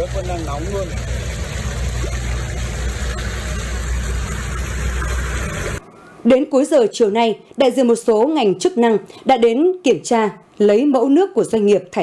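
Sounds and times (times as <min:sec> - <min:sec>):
water gushing through drain channel: 0:00.0 - 0:05.8.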